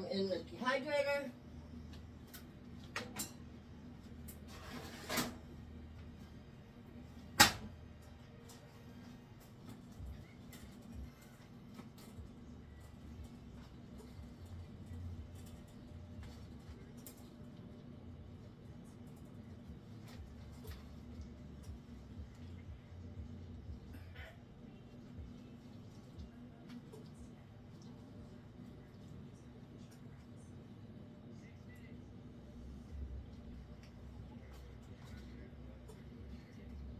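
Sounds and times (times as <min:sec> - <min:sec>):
low steady hum: 0:00.0 - 0:36.9.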